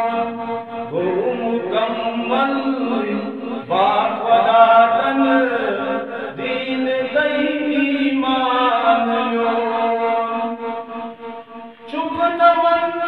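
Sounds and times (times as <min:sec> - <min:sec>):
man singing unaccompanied: 0:00.0 - 0:13.0.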